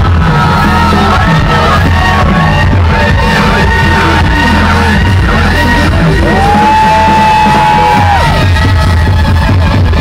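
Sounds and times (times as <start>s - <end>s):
live pop-rock band: 0.0s - 10.0s.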